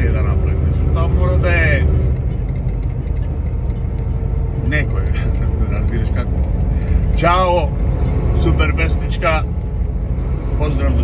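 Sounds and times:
road noise: 0.0s - 11.0s
truck engine rumble: 0.0s - 11.0s.

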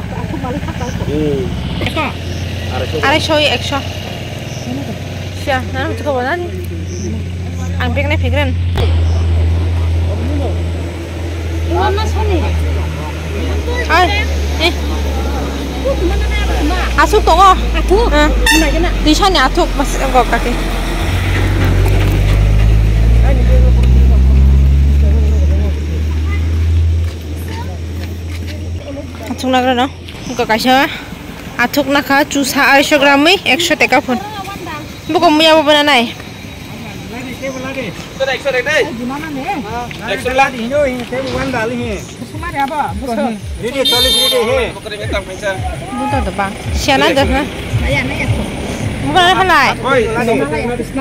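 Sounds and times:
low engine hum: 0.0s - 51.0s
steady low rumble: 5.1s - 33.5s
faint voices talking: 23.2s - 51.0s.

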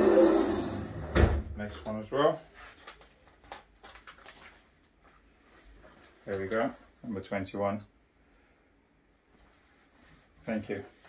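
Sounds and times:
soft fabric rustles: 4.2s - 7.4s, 9.1s - 11.0s.

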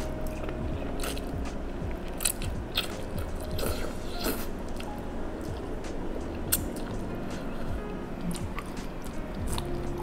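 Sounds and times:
chewing: 0.2s - 1.3s, 8.2s - 10.0s
person slurping noodles: 3.6s - 4.5s.

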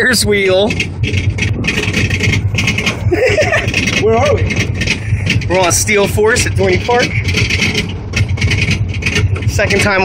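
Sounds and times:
lift chain rumbling: 0.0s - 10.0s
rapid ratchet clicking: 0.6s - 10.0s.

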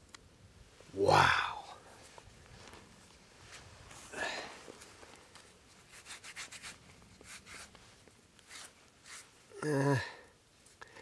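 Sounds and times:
soft rush of noise: 0.0s - 11.0s
fingers scraping dirt off crystal: 5.7s - 7.8s, 8.4s - 9.4s.

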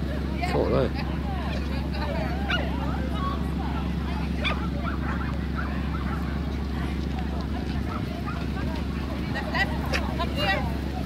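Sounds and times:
dog barking: 2.5s - 2.7s, 4.4s - 6.4s, 7.8s - 8.5s.

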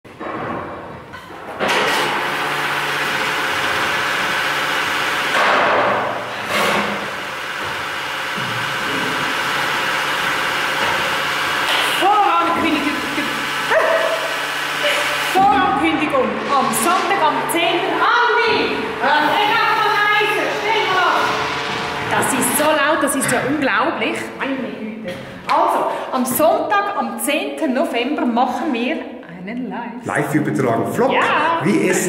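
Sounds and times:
barrel-cleaning equipment hissing: 1.8s - 24.2s.

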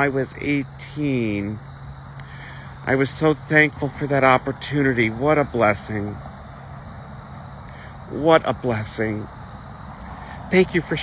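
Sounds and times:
man's voice: 0.0s - 1.6s, 2.2s - 6.2s, 7.8s - 9.3s, 10.1s - 11.0s
steady background noise: 0.0s - 11.0s.

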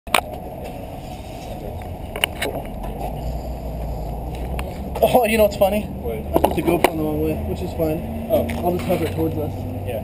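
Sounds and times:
steady low rumble: 0.1s - 8.5s.

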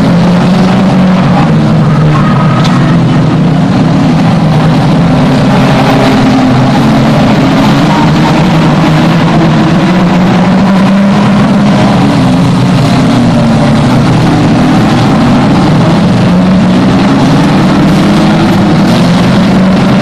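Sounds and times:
racing car engines running hard: 0.0s - 20.0s.

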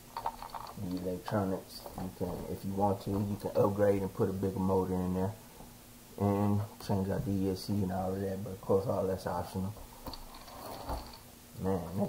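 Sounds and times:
plastic toy car rattling: 0.2s - 1.1s.

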